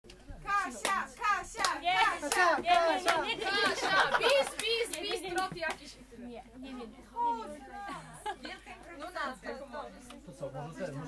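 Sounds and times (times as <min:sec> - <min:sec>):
sharp hand claps: 0:01.6 - 0:03.2.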